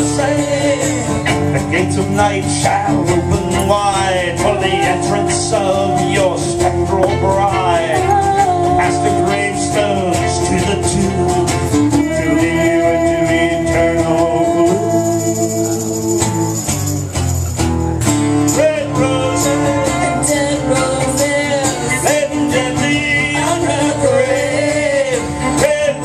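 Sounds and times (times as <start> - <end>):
acoustic guitar strumming: 0.0 - 26.0
wavering melody line: 3.7 - 14.0.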